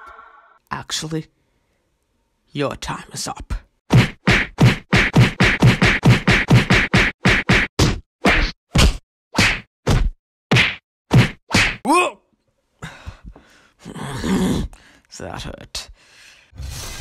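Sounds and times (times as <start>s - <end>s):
punch sound effects: 3.9s - 11.8s.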